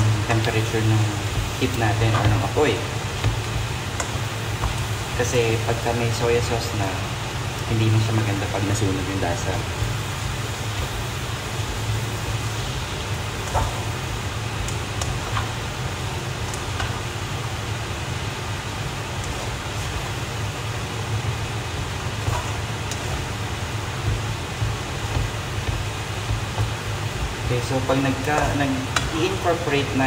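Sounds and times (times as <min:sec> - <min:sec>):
noodles stir-frying hum and hiss: 0:00.0 - 0:30.0.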